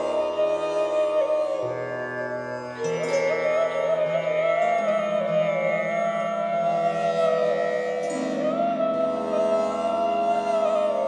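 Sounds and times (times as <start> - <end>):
meditative flute music: 0.0 - 11.0.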